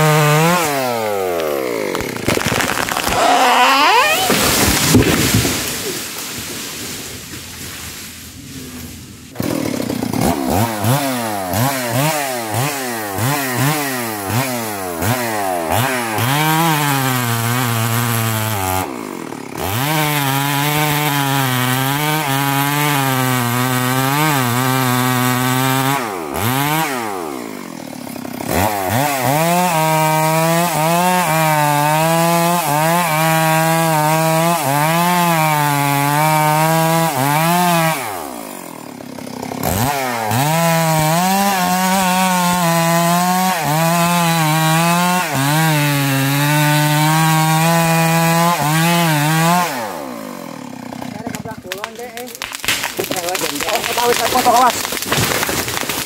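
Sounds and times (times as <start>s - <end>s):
chainsaw revving and cutting wood: 0.0s - 56.0s.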